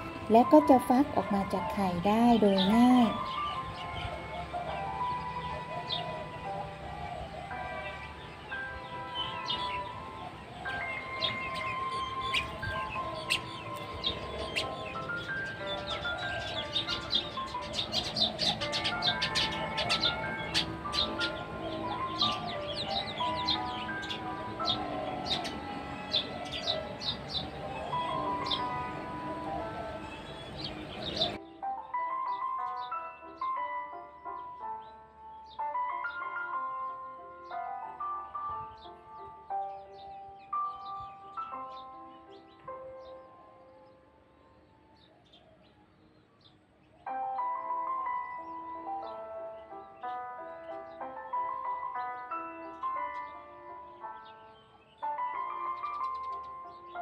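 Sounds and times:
simple melody of held notes: 0:00.0 - 0:44.8, 0:47.0 - 0:57.0
high bird chirps: 0:07.8 - 0:31.4, 0:54.1 - 0:57.0.

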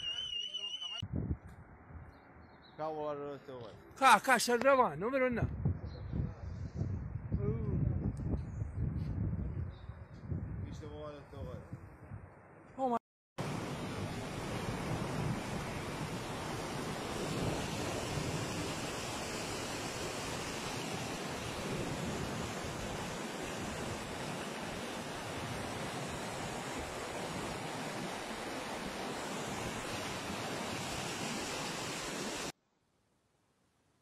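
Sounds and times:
floodwater rushing: 0:13.4 - 0:32.5.

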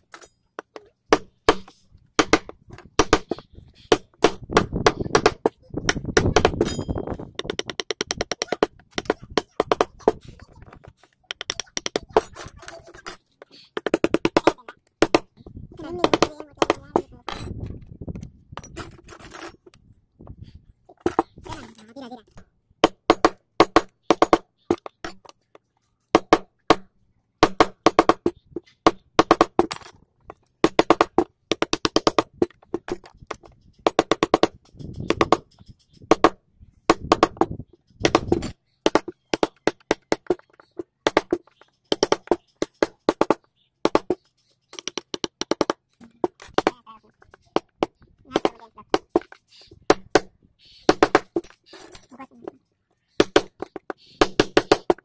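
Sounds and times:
chisels tapping into wood: 0:00.1 - 0:17.5, 0:20.9 - 0:52.6, 0:53.2 - 0:55.0.

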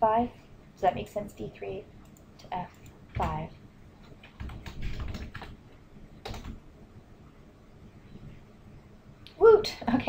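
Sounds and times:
computer keyboard typing: 0:04.0 - 0:05.6, 0:06.2 - 0:06.6.

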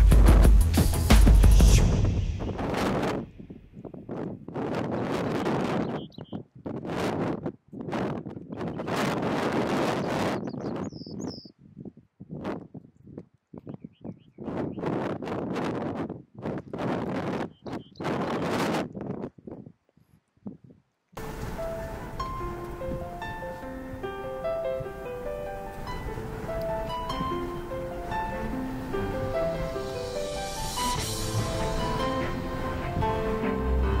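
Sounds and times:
gusty wind on microphone: 0:00.0 - 0:34.0
songbird high notes: 0:21.2 - 0:34.0.

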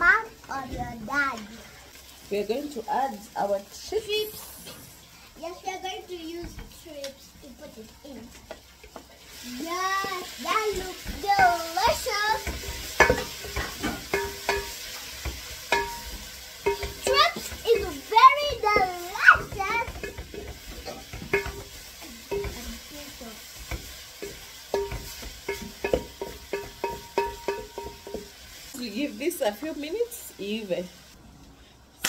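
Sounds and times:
low sizzle: 0:00.0 - 0:32.0
spoon knocking metal pot: 0:12.4 - 0:17.9, 0:18.6 - 0:22.8, 0:23.6 - 0:28.3.

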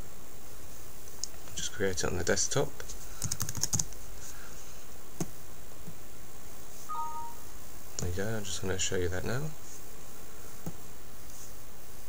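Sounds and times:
computer keyboard keystrokes: 0:03.2 - 0:03.9
two-note descending chime: 0:06.9 - 0:07.4.

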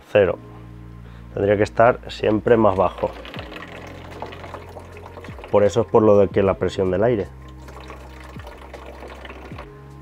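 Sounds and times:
quiet background music: 0:00.0 - 0:10.0
water trickling into plastic jug: 0:02.3 - 0:09.7.

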